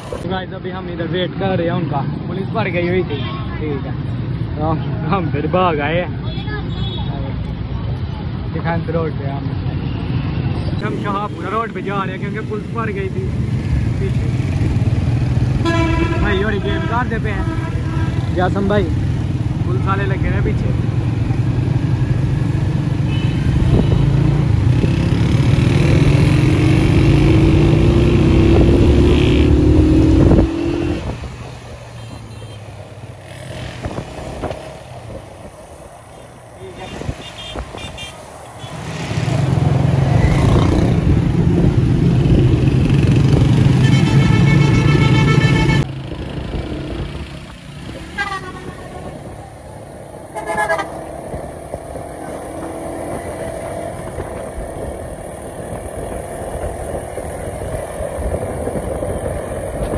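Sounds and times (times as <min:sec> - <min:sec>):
traffic engines rumbling: 0:00.0 - 0:59.9
vehicle horns honking: 0:15.6 - 0:18.4, 0:23.1 - 0:24.1, 0:32.0 - 0:32.6, 0:36.2 - 0:38.8, 0:43.8 - 0:45.8, 0:48.0 - 0:49.2, 0:50.3 - 0:51.0.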